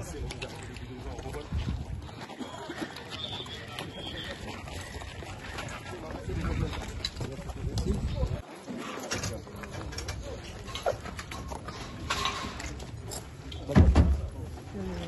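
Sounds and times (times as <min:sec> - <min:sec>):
footsteps on rubble: 0:00.0 - 0:14.8
distant voices: 0:00.0 - 0:15.0.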